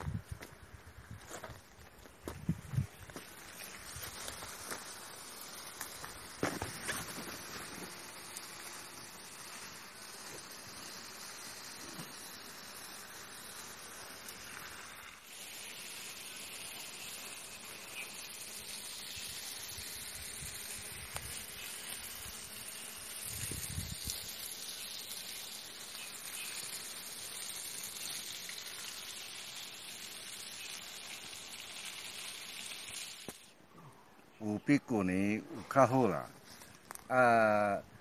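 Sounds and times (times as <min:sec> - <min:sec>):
outdoor ambience hiss: 0:00.0 - 0:38.0.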